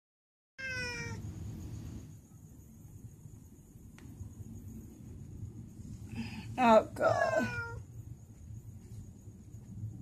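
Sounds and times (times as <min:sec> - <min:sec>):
cat meowing: 0:00.6 - 0:01.2, 0:07.0 - 0:07.9.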